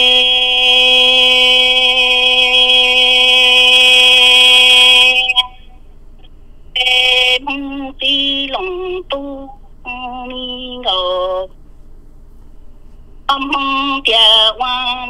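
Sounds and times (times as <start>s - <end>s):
solo voice singing: 6.8s - 11.5s, 13.3s - 15.0s.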